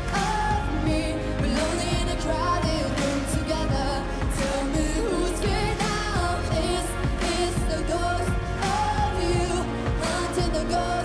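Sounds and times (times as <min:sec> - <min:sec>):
pop backing track: 0:00.0 - 0:11.0
woman singing pop ballad: 0:00.0 - 0:11.0.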